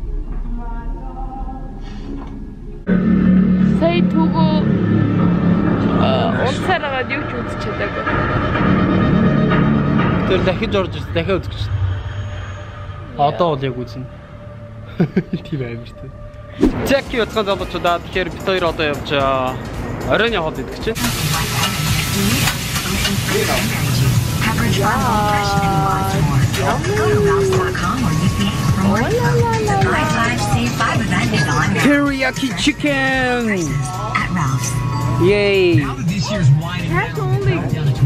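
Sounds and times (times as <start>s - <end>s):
film soundtrack music: 0.0s - 21.6s
steady low drone: 0.0s - 38.0s
voices: 16.8s - 38.0s
food sizzling on griddle: 21.0s - 27.6s.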